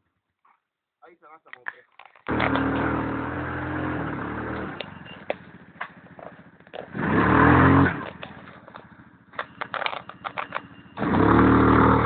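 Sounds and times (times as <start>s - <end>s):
atv engine revving: 2.3s - 12.0s.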